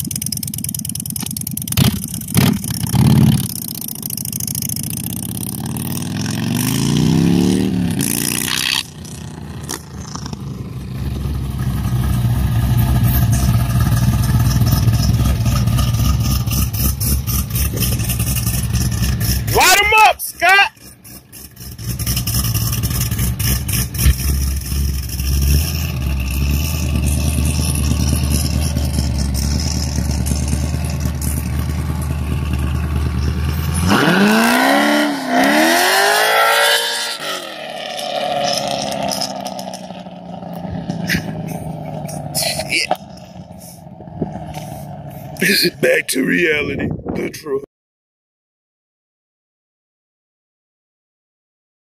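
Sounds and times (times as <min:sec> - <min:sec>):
motorcycle engine accelerating: 0:00.0 - 0:19.7, 0:20.7 - 0:46.6
car engine revving: 0:04.8 - 0:46.6.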